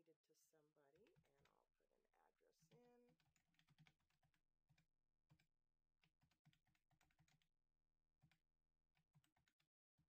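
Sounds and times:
typing on a keyboard: 0.8 - 1.6, 2.6 - 7.5, 8.2 - 10.0.

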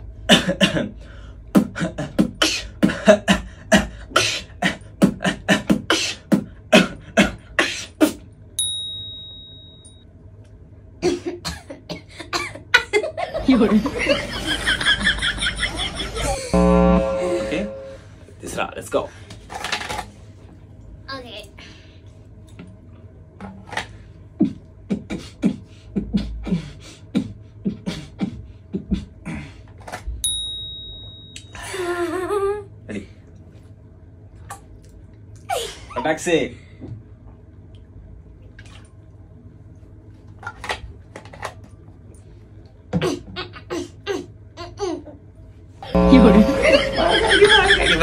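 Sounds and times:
muffled giggling: 12.8 - 16.6, 45.9 - 48.0.

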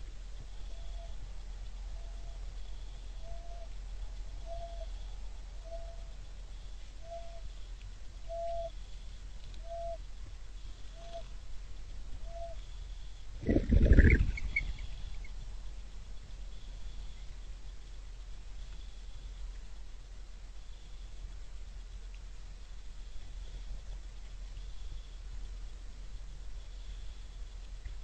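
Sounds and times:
bird calling low: 0.0 - 1.2, 1.9 - 8.9, 9.5 - 11.4, 12.2 - 15.6
high chirps: 13.4 - 15.3.

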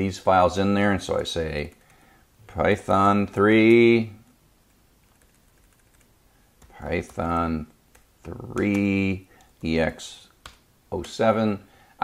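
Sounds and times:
person speaking: 0.0 - 4.4, 6.6 - 12.0.

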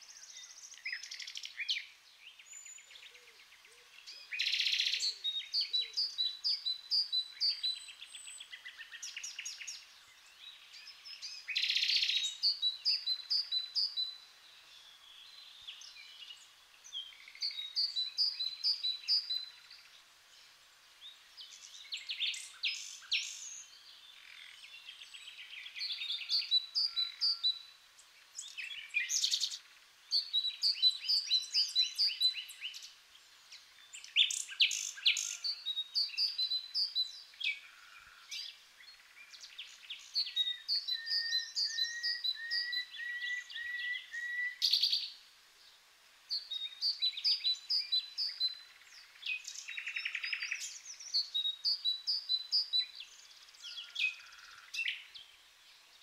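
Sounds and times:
lower whistled bird notes: 0.0 - 20.0, 21.2 - 27.7, 28.4 - 32.9, 33.5 - 45.2, 46.3 - 56.0
songbirds chirping and trilling: 0.0 - 56.0.

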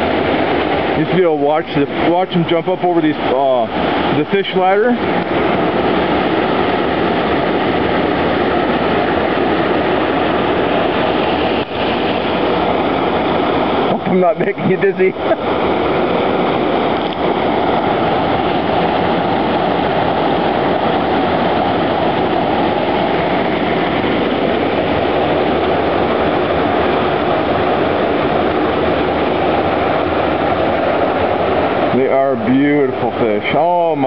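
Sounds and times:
whitewater rushing: 0.0 - 34.0.

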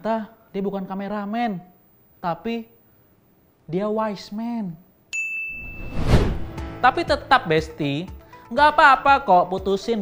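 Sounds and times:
bright ding chime: 5.2 - 5.8
whoosh: 5.5 - 6.8
soft background music: 6.1 - 10.0.

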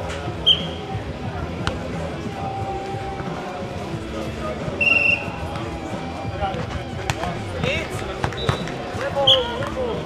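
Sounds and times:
football kicks and headers: 1.6 - 2.0, 6.4 - 9.8.

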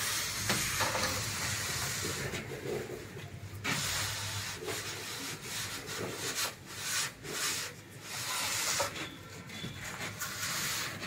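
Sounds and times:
straightedge scraping wet plaster: 3.7 - 9.2, 10.0 - 11.0.

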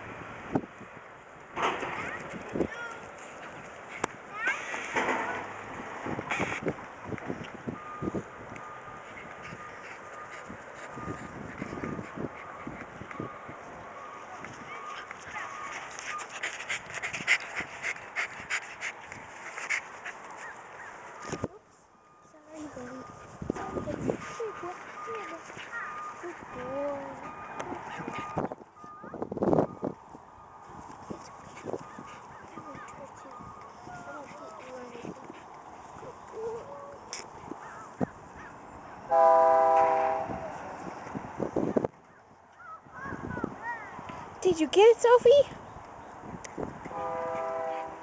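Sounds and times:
dog panting hard: 8.9 - 13.1, 14.5 - 20.6, 22.8 - 28.6, 31.0 - 36.7
horn chord: 39.1 - 40.5, 46.9 - 48.0.

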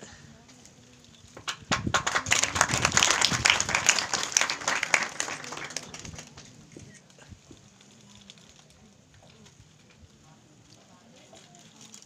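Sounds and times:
audience applauding: 1.4 - 6.5.

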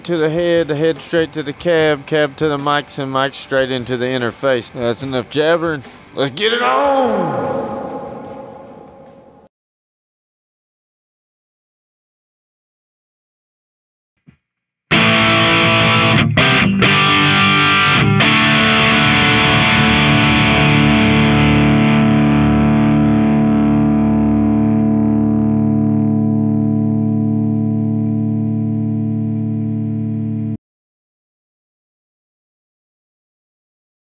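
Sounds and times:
distorted electric guitar chords: 6.6 - 9.5, 14.9 - 30.6.

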